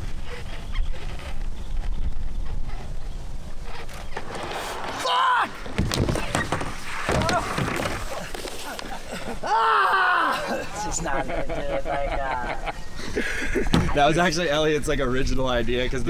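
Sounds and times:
man's wordless vocal cries: 9.4 - 10.8.

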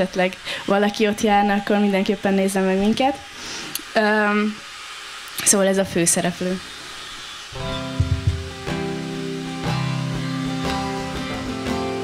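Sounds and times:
acoustic guitar chords strummed: 7.6 - 12.0.

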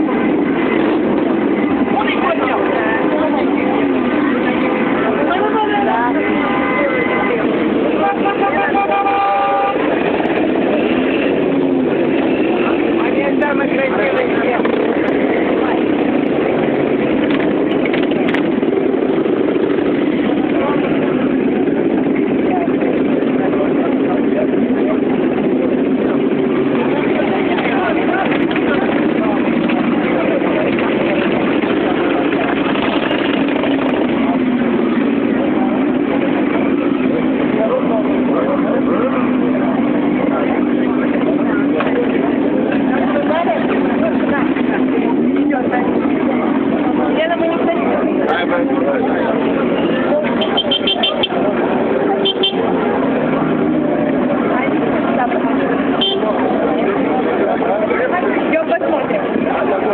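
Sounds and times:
crowd talking: 0.0 - 59.9
motorcycle engines droning: 0.0 - 59.9.

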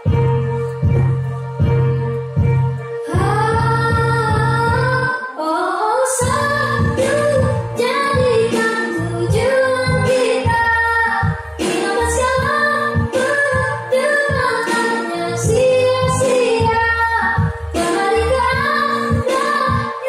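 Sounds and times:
girl singing into microphone: 0.0 - 20.0
instrumental accompaniment: 0.0 - 20.0.

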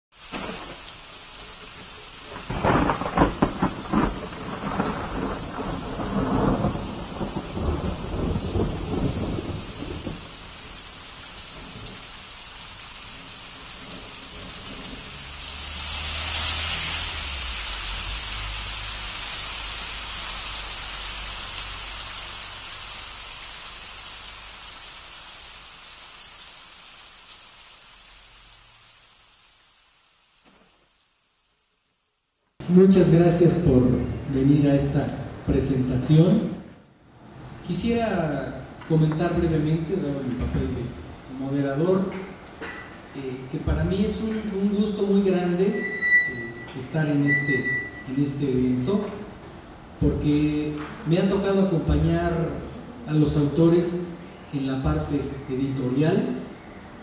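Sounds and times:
steady rain: 0.1 - 57.0
thunder rumbling: 0.3 - 23.6.

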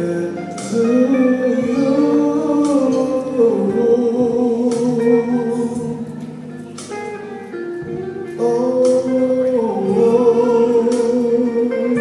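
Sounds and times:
guitar over held chords: 0.0 - 12.0.

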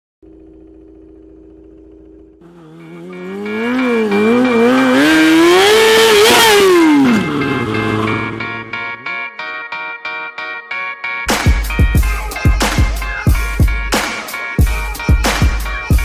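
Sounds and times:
low hum: 0.2 - 5.6
motorcycle engine revving: 0.2 - 9.1
intro music: 2.2 - 16.0.

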